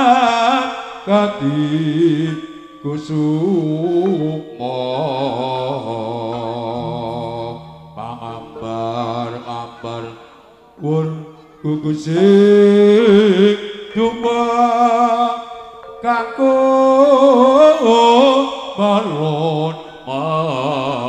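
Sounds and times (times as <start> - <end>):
chanted vocal melody: 0.0 - 21.0
sustained low tones: 1.4 - 12.2.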